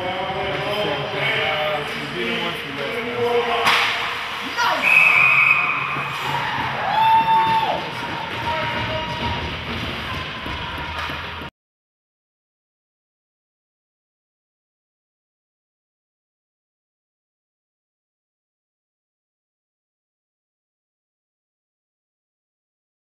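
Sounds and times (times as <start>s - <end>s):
crowd voices and shouting: 0.0s - 11.5s
hockey stick crack: 3.6s - 4.5s
high whistle-like tone: 4.8s - 6.2s.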